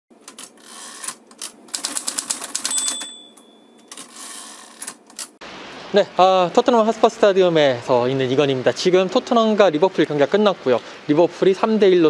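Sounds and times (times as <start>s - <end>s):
typewriter key clacks: 0.2s - 5.3s
typewriter bell ding: 2.5s - 4.7s.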